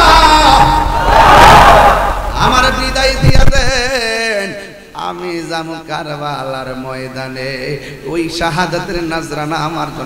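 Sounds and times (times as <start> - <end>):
man wailing through loudspeaker: 0.0 - 0.9
man chanting: 2.3 - 10.0.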